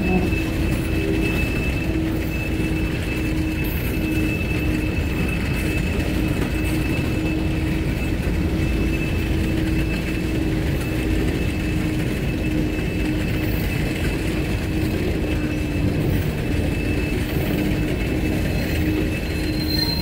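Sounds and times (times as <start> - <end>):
freight train wheels rumbling on rails: 0.0 - 20.0.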